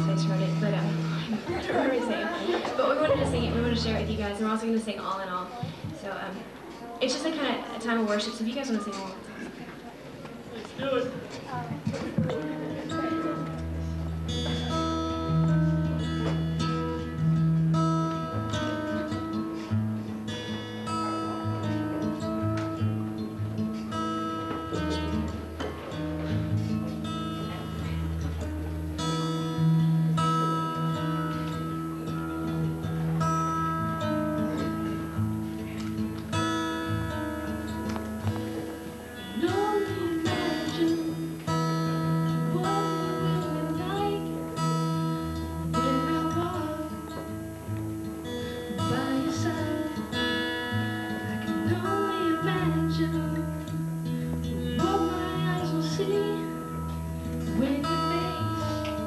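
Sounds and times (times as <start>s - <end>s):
acoustic guitar strumming: 0.0s - 6.2s, 10.8s - 59.0s
woman singing: 39.2s - 47.4s, 48.7s - 53.8s, 54.4s - 59.0s.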